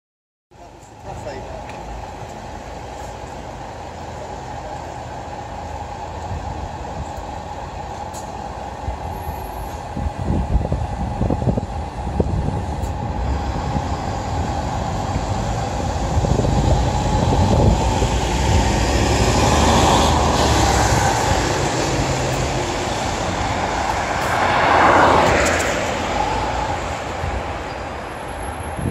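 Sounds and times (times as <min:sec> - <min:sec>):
bus engine rumble: 0:00.5 - 0:28.9
road noise on wet street: 0:00.5 - 0:28.9.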